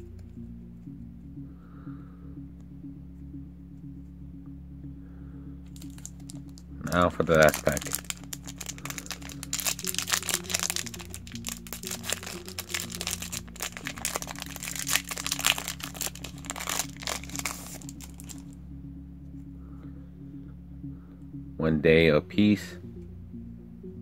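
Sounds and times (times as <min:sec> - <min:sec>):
background music: 0:00.0 - 0:24.0
foil wrapper crinkling and tearing: 0:05.8 - 0:18.4.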